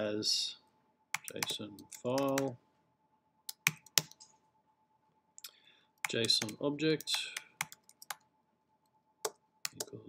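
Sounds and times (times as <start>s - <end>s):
computer keyboard keystrokes: 1.2s - 2.5s, 3.5s - 4.2s, 5.4s - 8.2s, 9.2s - 10.0s.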